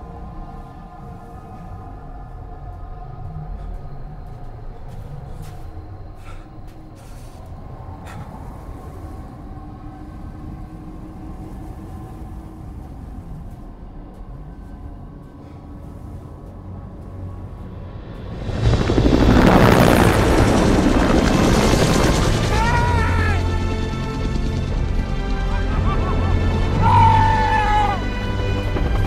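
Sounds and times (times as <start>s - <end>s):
low rumble: 0.0s - 29.0s
sustained orchestral score tones: 9.0s - 29.0s.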